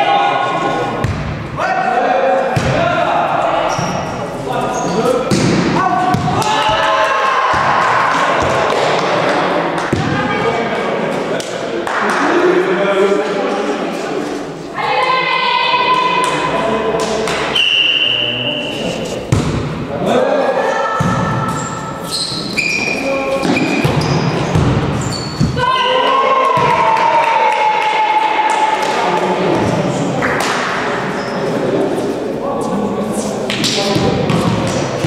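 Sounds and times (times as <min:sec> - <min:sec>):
players shouting: 0:04.8 - 0:10.7, 0:14.7 - 0:17.6, 0:25.4 - 0:29.6.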